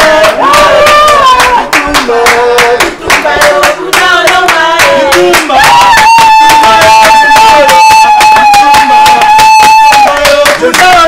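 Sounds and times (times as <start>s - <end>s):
group singing: 0.0s - 11.0s
rhythmic hand clapping: 0.0s - 11.0s.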